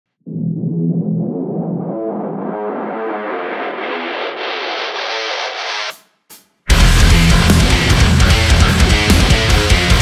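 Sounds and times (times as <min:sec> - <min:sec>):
distorted electric guitar: 0:00.3 - 0:06.0, 0:06.7 - 0:10.0.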